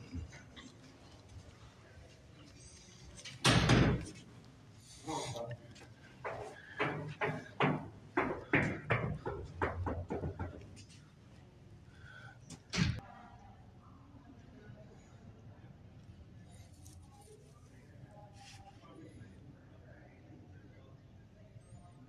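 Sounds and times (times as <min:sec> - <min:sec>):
knocking on glass door: 0:06.3 - 0:10.6.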